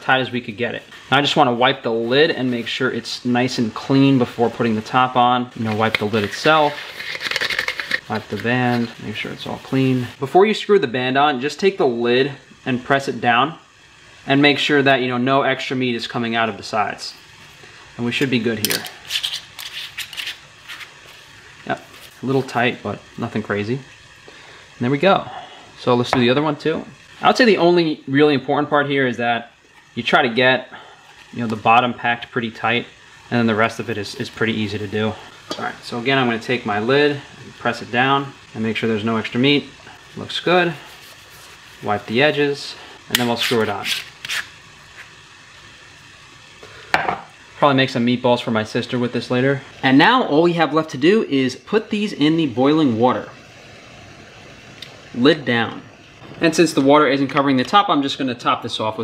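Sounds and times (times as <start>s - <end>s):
faint steady hiss: 0.0s - 59.0s
jar lid threads scraping: 5.7s - 9.0s, 18.6s - 20.9s
glass jar set down on stone: 46.9s - 47.3s.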